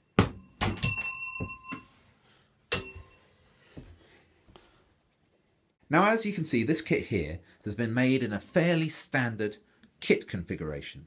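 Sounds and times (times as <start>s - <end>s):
metal junk struck with ringing: 2.7s - 3.1s.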